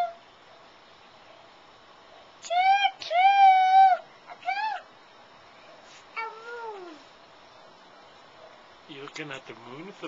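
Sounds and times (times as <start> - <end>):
child calling with falling pitch: 0.0 - 0.2, 2.4 - 4.9, 6.2 - 7.1
child squealing: 0.0 - 0.2, 2.4 - 4.9, 6.2 - 7.0.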